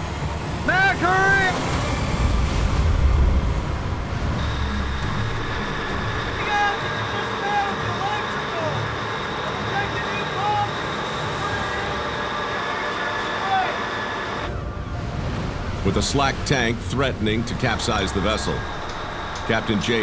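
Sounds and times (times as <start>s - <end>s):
machinery hum with high whine: 0.0s - 20.0s
low rumble: 1.6s - 7.0s.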